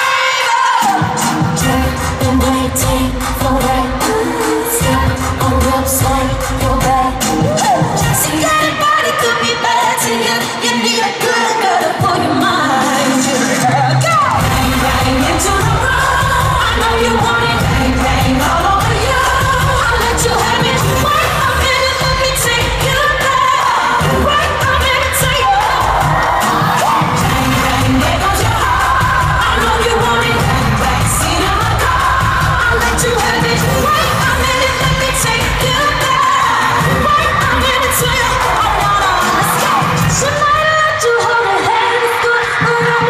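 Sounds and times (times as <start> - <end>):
woman singing: 0.0 - 43.0
bass-heavy backing track: 14.3 - 23.4, 24.0 - 40.6.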